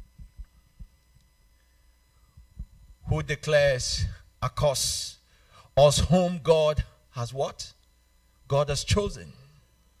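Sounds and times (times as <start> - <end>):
soft low thumps: 0.0 - 1.0, 2.4 - 3.0.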